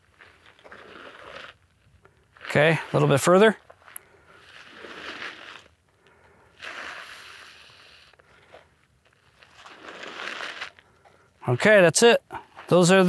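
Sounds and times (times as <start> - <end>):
clothing scraping over gritty dirt: 0.0 - 13.0.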